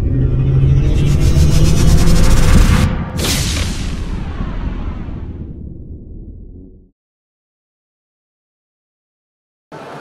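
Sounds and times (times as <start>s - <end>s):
rising whoosh: 0.0s - 6.7s
deep rumbling drone: 0.0s - 6.9s.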